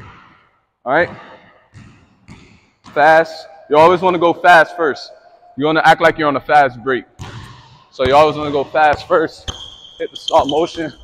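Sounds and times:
basketball bouncing on gym floor: 0.0s - 0.4s, 1.0s - 3.2s, 7.2s - 11.0s.

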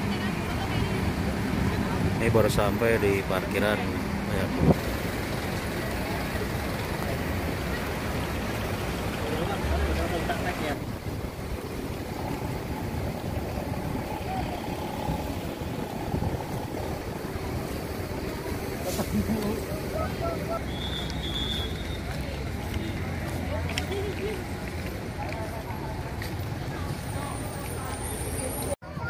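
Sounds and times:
indistinct voices: 0.0s - 29.0s
vehicle noise: 0.0s - 29.0s
wind noise: 4.4s - 5.0s, 10.8s - 20.6s.

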